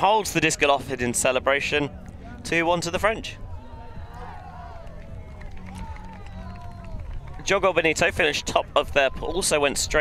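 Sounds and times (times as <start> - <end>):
distant voices shouting: 3.4 - 7.5.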